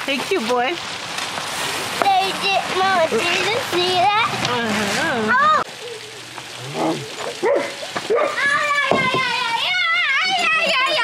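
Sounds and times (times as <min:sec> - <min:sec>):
young child squealing: 0:08.3 - 0:11.0.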